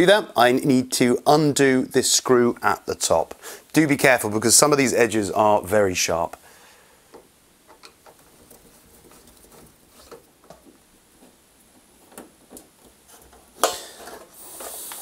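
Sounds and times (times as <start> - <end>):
plastic cover scrape with hiss: 13.0 - 15.0.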